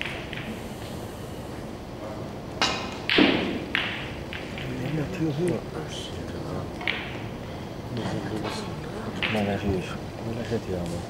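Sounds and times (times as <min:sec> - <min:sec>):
snooker balls clacking: 0:00.0 - 0:01.0, 0:01.9 - 0:11.0.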